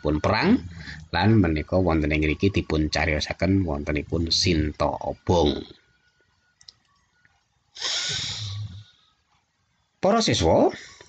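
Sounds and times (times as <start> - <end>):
person exhaling: 7.8 - 8.9.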